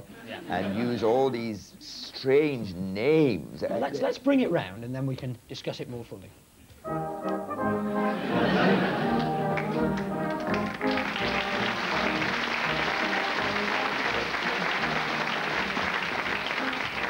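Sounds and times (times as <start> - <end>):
studio audience applauding: 8.7 - 17.0.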